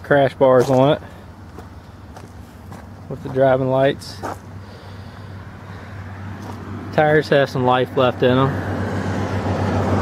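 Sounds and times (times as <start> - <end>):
low background rumble and hum: 0.0 - 10.0.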